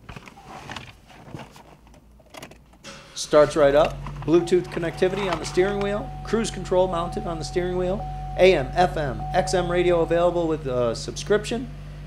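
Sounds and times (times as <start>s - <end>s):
car key clicks and rattles: 2.0s - 2.8s.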